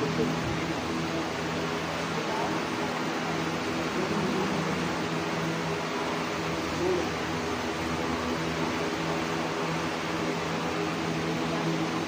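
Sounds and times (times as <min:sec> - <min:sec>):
faint indistinct voices: 0:00.0 - 0:12.0
fan-driven machine humming: 0:00.0 - 0:12.0.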